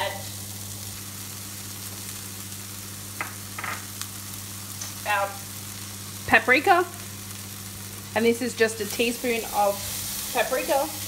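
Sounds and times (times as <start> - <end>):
vegetables sizzling in frying pan: 0.0 - 11.0.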